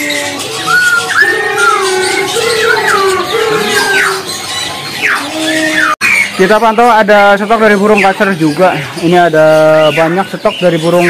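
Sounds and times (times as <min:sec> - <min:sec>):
lower wavering bird notes: 0:00.0 - 0:06.8
birds whistling: 0:00.0 - 0:11.0.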